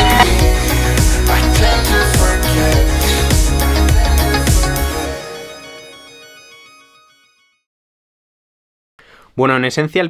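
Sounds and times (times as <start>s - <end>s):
music beat: 0.0s - 5.3s
held music chord ringing: 0.0s - 7.5s.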